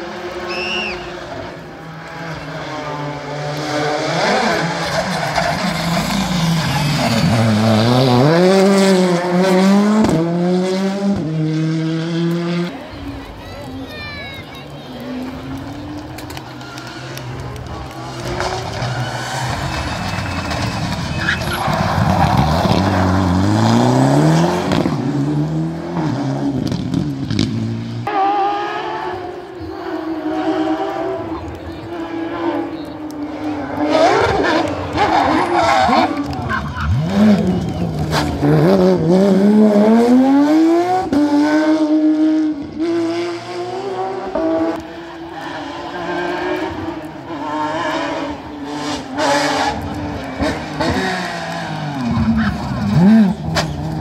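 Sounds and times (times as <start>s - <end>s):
rally car engines revving past: 0.0s - 54.0s.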